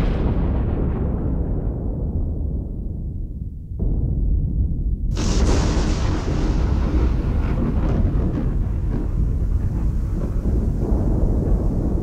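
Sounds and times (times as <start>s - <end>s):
thunder crash and rumble: 0.0s - 12.0s.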